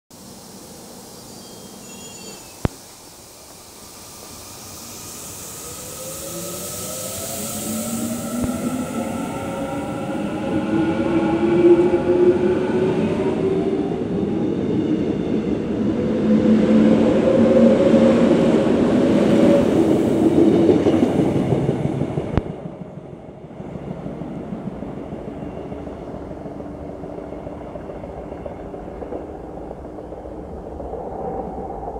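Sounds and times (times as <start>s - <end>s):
wheels rumbling on rail: 0.2s - 31.9s
electric train motors whining: 3.4s - 12.4s.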